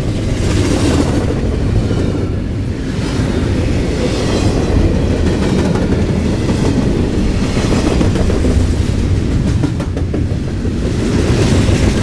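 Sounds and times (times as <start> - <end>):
freight train rumbling: 0.0 - 12.0
train wheel clicks: 5.2 - 12.0.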